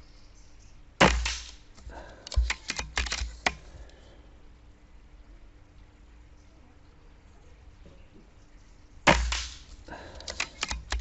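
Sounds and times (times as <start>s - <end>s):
air rifle shot: 1.0s - 1.7s, 2.3s - 3.6s, 9.1s - 11.0s
sharp mechanical clicks and knocks: 2.2s - 3.7s, 9.1s - 11.0s.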